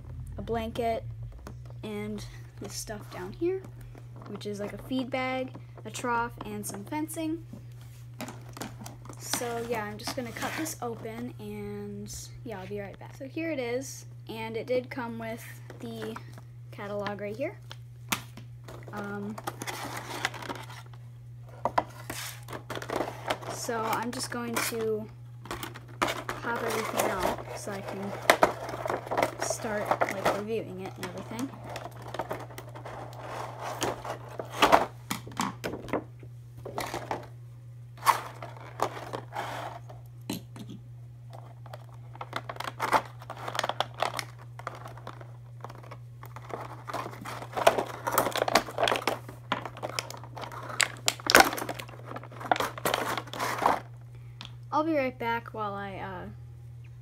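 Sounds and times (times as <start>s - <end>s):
steady low hum: 0.0s - 57.0s
packaging rustling: 18.7s - 21.0s, 21.6s - 36.0s, 36.6s - 37.3s, 38.0s - 40.0s, 41.3s - 53.9s.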